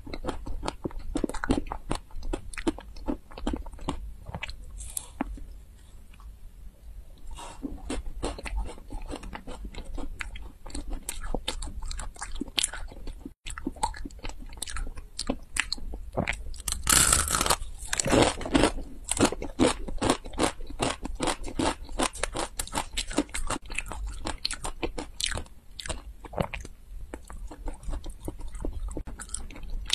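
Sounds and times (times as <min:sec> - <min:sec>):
crunching and chewing snacks: 0:00.0 - 0:05.5, 0:07.5 - 0:29.9.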